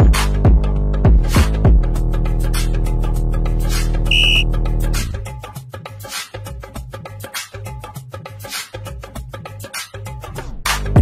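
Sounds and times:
workout music with steady beat: 4.1 - 4.4
short electronic beep: 4.1 - 4.5.

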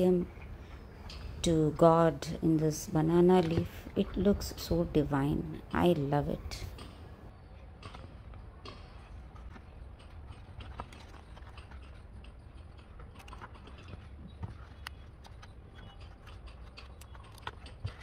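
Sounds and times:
leaf crackling being folded: 9.3 - 18.0.

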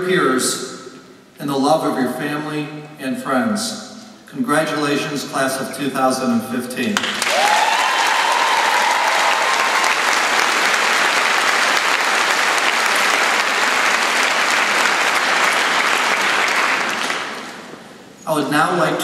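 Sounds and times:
audience applauding: 7.0 - 17.9
person whooping: 7.3 - 10.0.

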